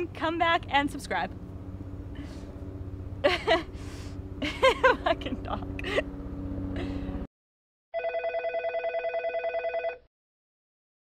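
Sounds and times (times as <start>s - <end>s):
telephone ringing trill: 8.0s - 10.1s.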